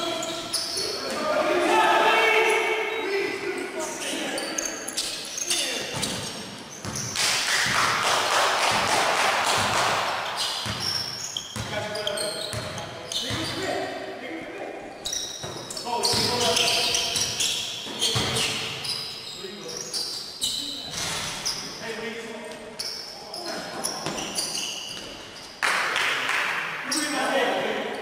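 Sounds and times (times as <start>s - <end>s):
players calling out: 0.0s - 7.1s
people shouting: 1.1s - 2.8s
basketball bouncing: 9.5s - 11.8s.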